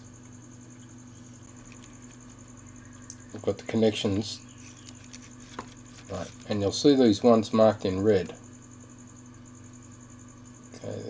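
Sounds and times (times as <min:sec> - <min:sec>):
faint steady hum: 0:00.0 - 0:11.0
thin high whine: 0:00.0 - 0:11.0.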